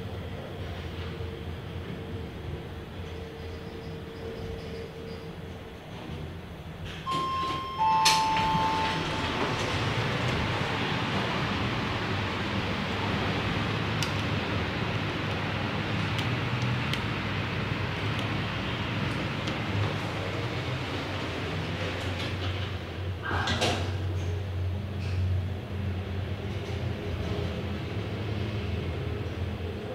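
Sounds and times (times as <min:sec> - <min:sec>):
elevator rushing noise with hum: 0:00.0 - 0:23.2
elevator chime two falling notes: 0:07.0 - 0:10.0.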